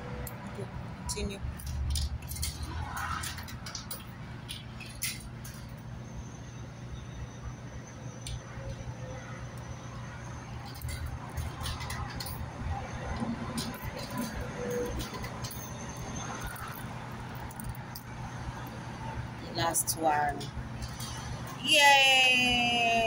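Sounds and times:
coins clinking into coin slot: 1.6s - 5.8s, 13.5s - 18.1s.

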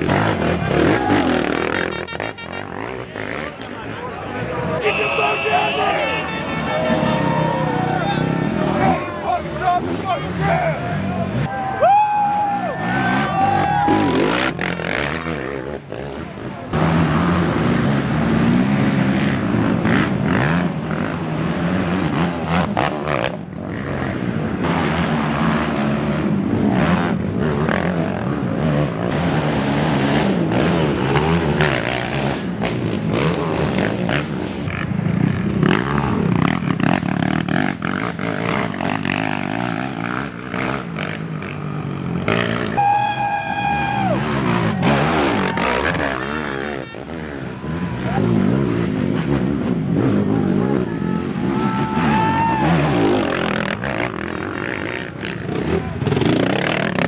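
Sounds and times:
quad engines revving: 0.0s - 57.0s.

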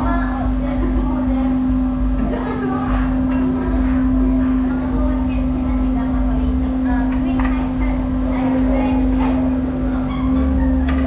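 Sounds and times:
indistinct voices: 0.0s - 11.0s
low rumble: 0.0s - 11.0s
steady machine hum: 0.0s - 11.0s.

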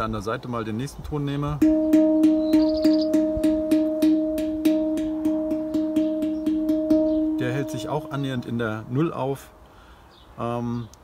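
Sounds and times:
handpan note tapped rapidly: 1.6s - 8.6s.

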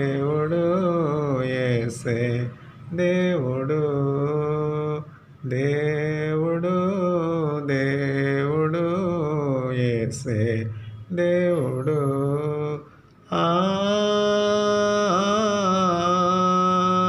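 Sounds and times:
man singing unaccompanied: 0.0s - 17.0s.

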